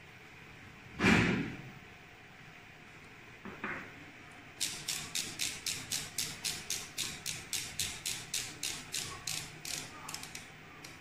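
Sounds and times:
ratcheting clicks: 4.6s - 11.0s.

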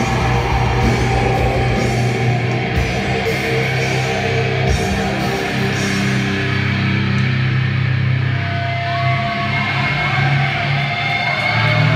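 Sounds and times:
distorted electric guitars: 0.0s - 11.9s
live metal band playing: 0.0s - 11.9s.

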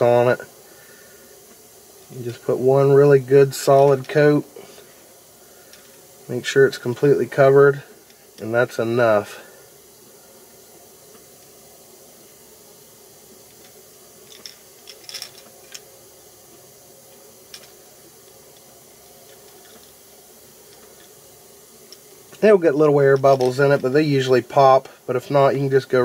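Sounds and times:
low background hiss: 0.0s - 26.0s
faint ticks and clicks: 5.6s - 6.1s, 13.4s - 15.9s, 16.5s - 21.2s, 21.8s - 22.4s.

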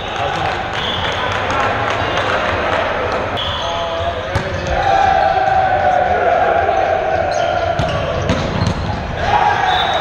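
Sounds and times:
players shouting in a gym: 0.0s - 10.0s
ball impact echoing: 4.3s - 4.8s, 7.7s - 8.9s.

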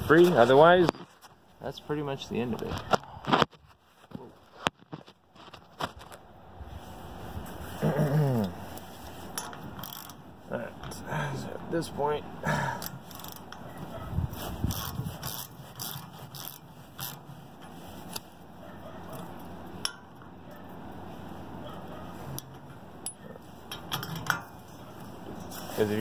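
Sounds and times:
wrench clinking on steel: 9.3s - 10.2s, 22.4s - 24.6s.

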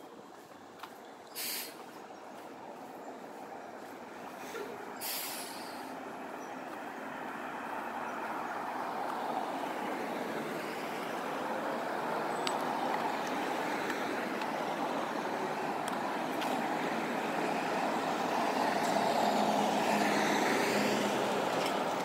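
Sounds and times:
road traffic passing: 0.0s - 22.0s.

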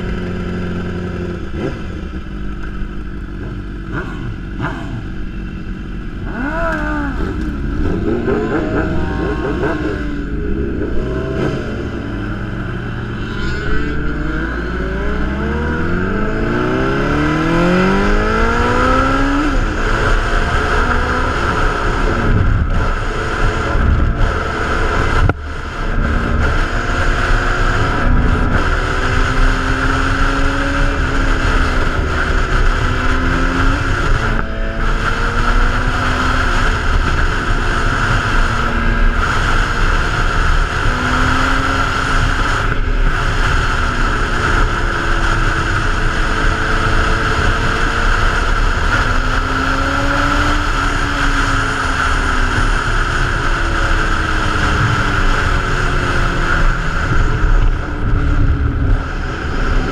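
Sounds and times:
motorcycle engine running: 0.0s - 59.9s
wind rush on microphone: 6.3s - 59.9s.

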